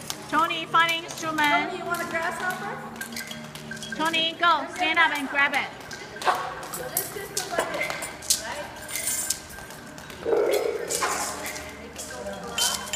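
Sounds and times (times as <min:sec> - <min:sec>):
background chatter: 0:00.2 - 0:12.9
hand percussion clicks and clinks: 0:00.8 - 0:12.9.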